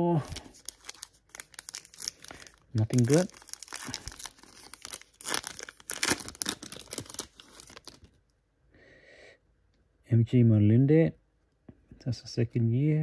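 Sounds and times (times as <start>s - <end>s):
foil wrapper tearing and crinkling: 0.3s - 8.2s.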